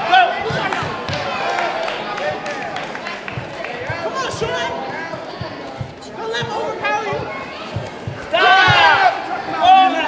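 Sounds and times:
spectators' voices echoing: 0.0 - 10.0.

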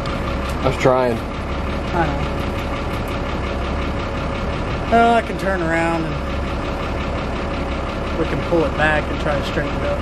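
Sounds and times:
large vehicle engine idling: 0.0 - 10.0.

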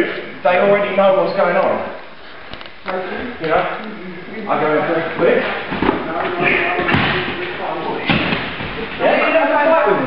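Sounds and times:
men's voices in echoing gym: 0.0 - 10.0
thumps of bodies on wrestling mat: 5.7 - 9.0.

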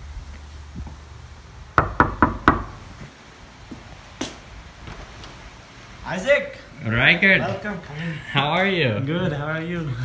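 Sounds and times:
knuckles knocking on wooden door: 1.8 - 2.8.

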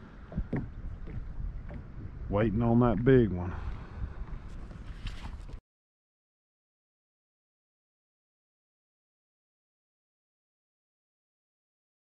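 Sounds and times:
small waves lapping on hull: 0.0 - 5.6
wind rumbling on microphone: 0.0 - 5.6.

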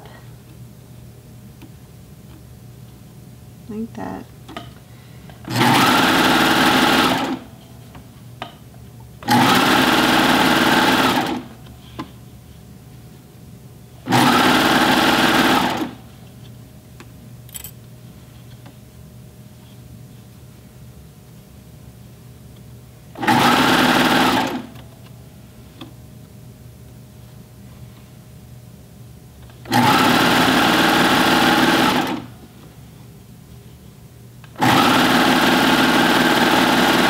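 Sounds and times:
overlock sewing machine running: 5.5 - 7.4, 9.2 - 11.5, 14.1 - 16.0, 23.2 - 24.7, 29.7 - 32.3, 34.6 - 37.0.

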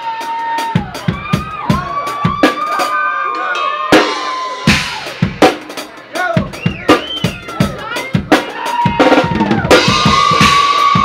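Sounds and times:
crowd cheering and yelling: 0.0 - 11.0.

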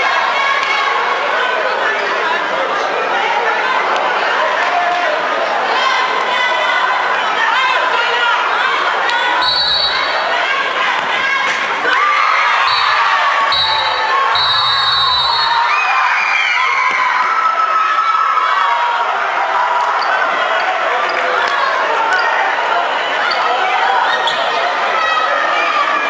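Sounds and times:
children shouting and cheering: 3.1 - 26.0
high-pitched whistle blasts: 9.4 - 10.2, 12.6 - 15.7.

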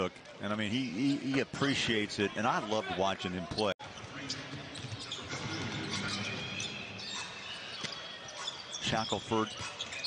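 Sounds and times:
crowd murmur and voices: 0.0 - 10.0.

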